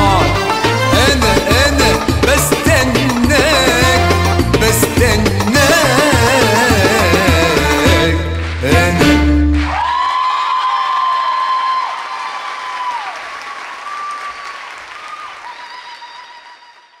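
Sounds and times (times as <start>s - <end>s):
audience applause: 9.5s - 17.0s
high cheering calls: 9.6s - 17.0s.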